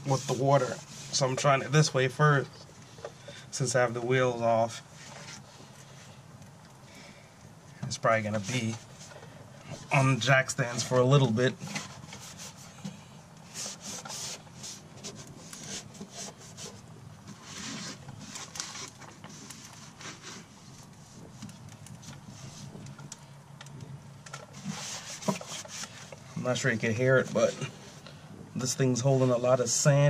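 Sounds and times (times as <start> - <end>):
gritty rag scrubbing: 0.0 - 2.0, 8.0 - 12.8, 13.4 - 22.9, 24.5 - 28.0.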